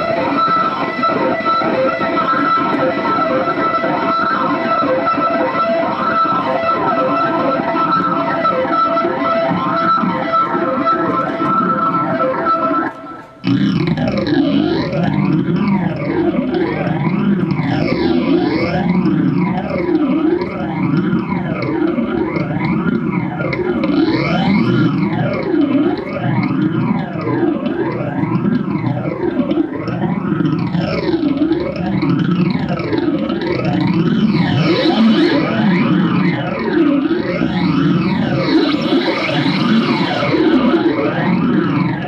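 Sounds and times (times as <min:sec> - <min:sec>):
distorted electronic drone sweeping: 0:00.0 - 0:42.0.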